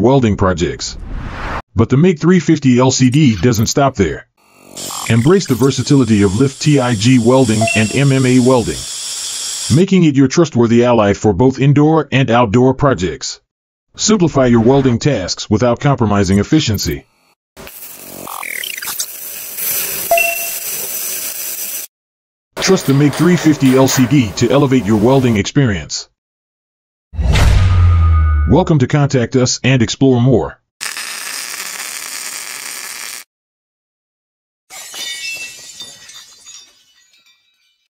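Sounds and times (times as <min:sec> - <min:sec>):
welding arc hissing and crackling: 0:04.5 - 0:09.7, 0:17.6 - 0:21.9, 0:30.8 - 0:33.3
glassy clinking shimmer: 0:07.0 - 0:08.7, 0:20.1 - 0:20.9, 0:34.7 - 0:37.9
bright ding sound effect: 0:07.6 - 0:08.2, 0:20.1 - 0:20.6.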